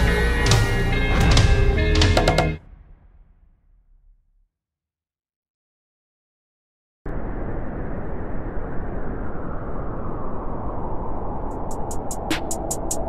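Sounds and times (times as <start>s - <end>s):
rushing noise layer: 7.1s - 13.0s.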